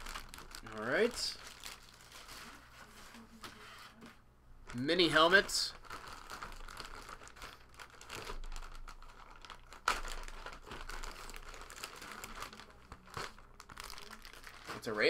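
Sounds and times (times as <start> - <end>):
plastic bag rustling and crinkling: 0.0 - 4.1, 4.7 - 15.0.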